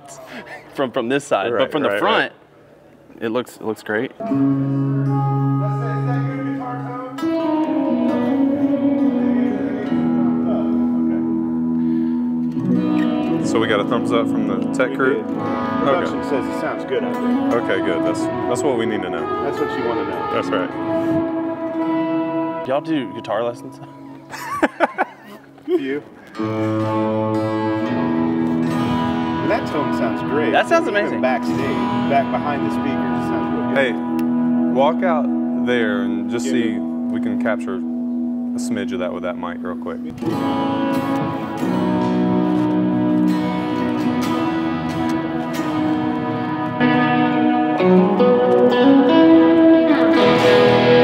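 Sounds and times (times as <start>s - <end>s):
electric guitar chords through amp: 4.2s - 24.9s, 26.4s - 51.0s.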